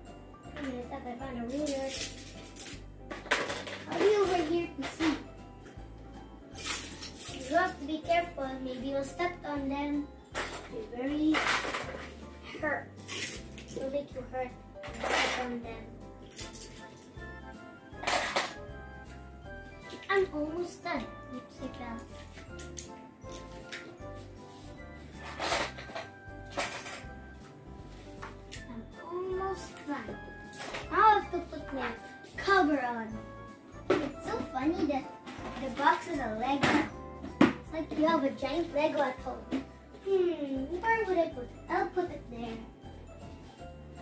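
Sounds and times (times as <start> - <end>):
background music: 0.0 - 44.0
plastic toy blocks clattering: 1.6 - 5.0, 11.3 - 12.1, 18.0 - 18.6, 25.2 - 27.1.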